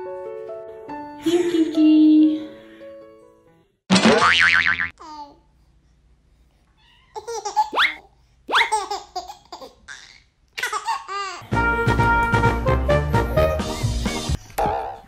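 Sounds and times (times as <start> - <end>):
music: 0.0 - 3.8, 11.4 - 14.4
baby giggling: 7.2 - 11.4.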